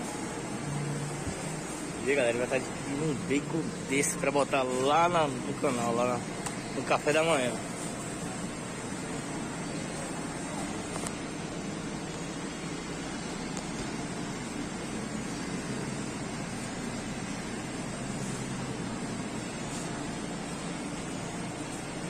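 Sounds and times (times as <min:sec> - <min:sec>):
hiss of refrigerator fans: 0:00.0 - 0:22.0.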